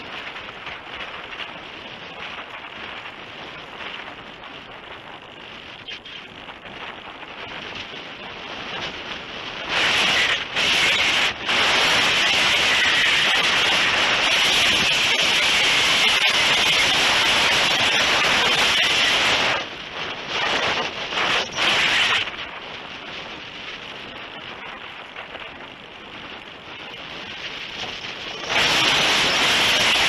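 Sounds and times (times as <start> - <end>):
wind rushing over microphone: 0.0 - 30.0.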